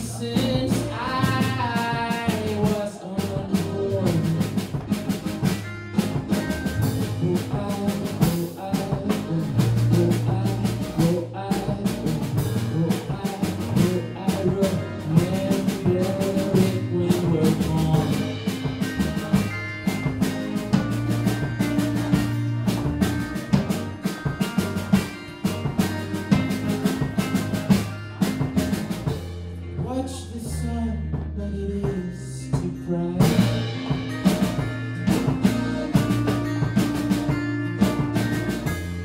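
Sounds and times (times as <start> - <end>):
drum kit steady beat: 0.0 - 39.0
indie pop band playing: 0.0 - 39.0
low bass notes: 0.0 - 39.0.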